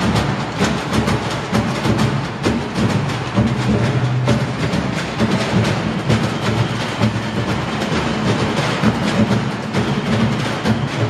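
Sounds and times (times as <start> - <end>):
drums and barrels beaten: 0.0 - 11.0.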